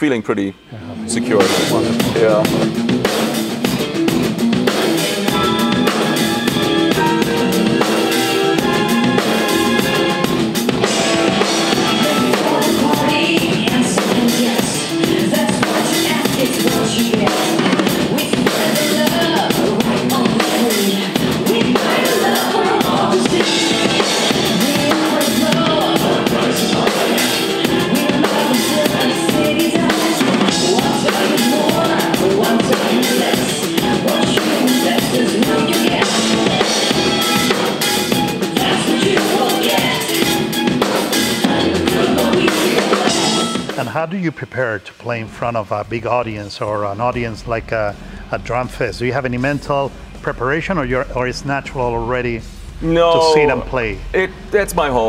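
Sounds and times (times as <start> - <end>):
backing track held notes: 0.0 - 44.2, 45.1 - 55.0
pitched music underneath: 0.0 - 44.2
drum kit playing: 0.0 - 55.0.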